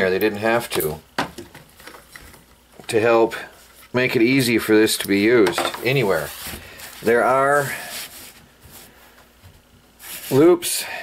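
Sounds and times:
faint rustling and handling noise: 0:00.3 - 0:10.9.

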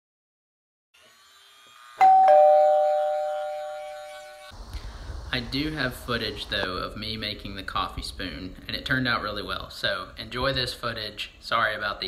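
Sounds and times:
two-note doorbell chime: 0:02.0 - 0:04.4.

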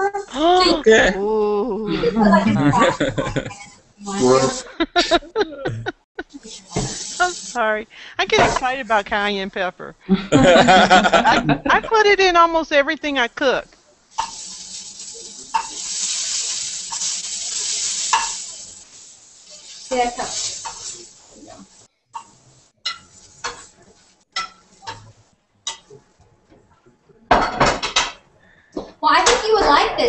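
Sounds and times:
dumplings sizzling in oil: 0:06.3 - 0:07.6, 0:14.0 - 0:26.0
tongs clattering: 0:22.2 - 0:25.1.

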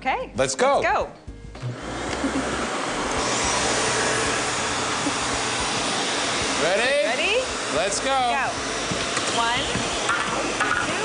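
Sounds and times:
vacuum cleaner running: 0:01.5 - 0:11.0.

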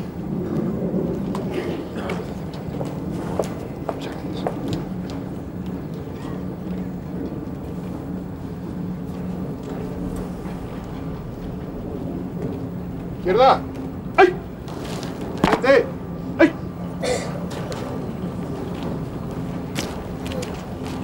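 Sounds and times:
outdoor background rumble: 0:00.0 - 0:21.0.

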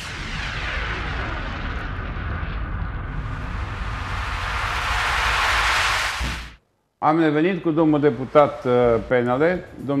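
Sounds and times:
deep rumbling whoosh: 0:00.0 - 0:06.6.

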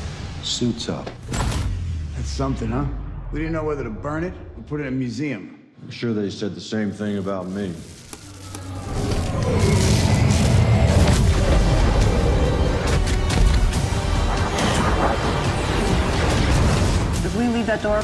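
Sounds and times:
trailer music: 0:00.0 - 0:05.6, 0:08.3 - 0:18.0.

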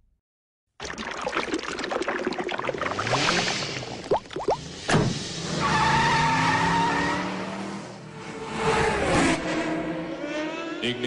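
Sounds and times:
sharp pop: 0:04.9 - 0:05.2.

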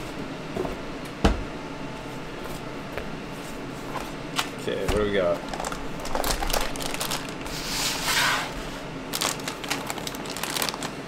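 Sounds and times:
cardboard packaging handled: 0:05.5 - 0:07.7, 0:09.1 - 0:11.0.

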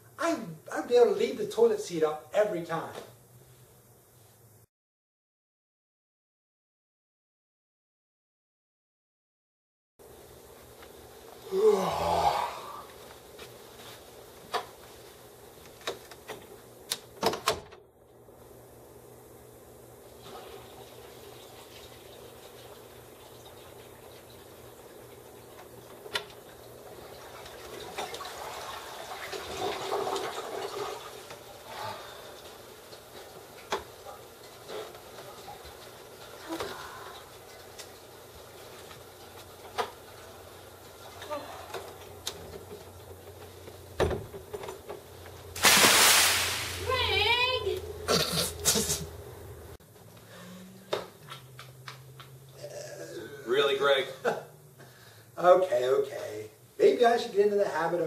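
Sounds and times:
faint steady hum: 0:10.0 - 0:28.8, 0:46.4 - 0:58.0
toilet flushing: 0:19.9 - 0:41.2.

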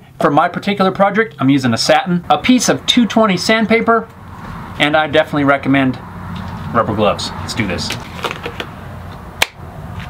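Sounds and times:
rubber gloves rustling: 0:07.9 - 0:08.8.

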